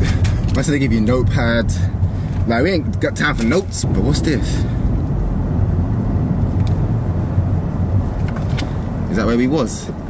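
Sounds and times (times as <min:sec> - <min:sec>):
car cabin rumble while driving: 0:00.0 - 0:10.0.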